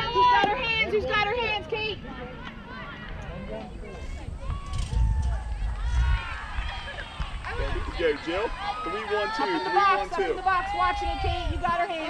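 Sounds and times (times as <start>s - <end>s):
players calling out and chattering: 0.0s - 12.0s
low microphone rumble: 3.8s - 8.6s.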